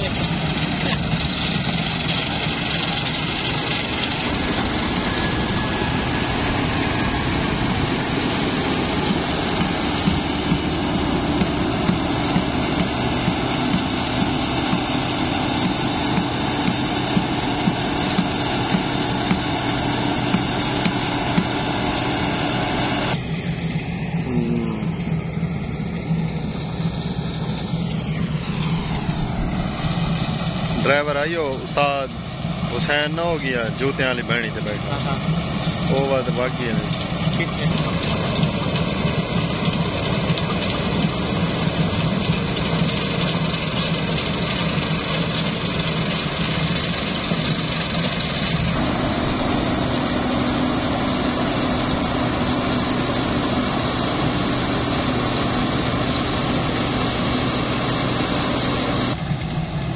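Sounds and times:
combine harvester engine drone: 0.0 - 59.9
cutter and threshing machinery noise: 0.0 - 59.9.

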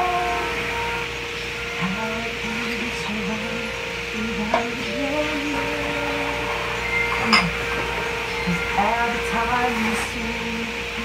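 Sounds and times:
woman singing: 0.0 - 1.0, 1.8 - 7.6, 8.4 - 11.0
steady background hum: 0.0 - 11.0.

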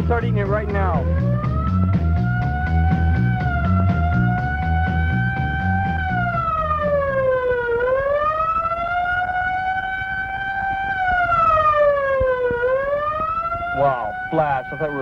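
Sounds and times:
rock music with heavy beat: 0.0 - 6.8
police siren wailing: 0.0 - 15.0.

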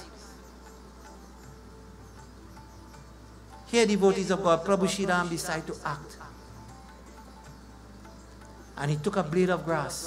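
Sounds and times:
low hum through pa system: 0.0 - 10.0.

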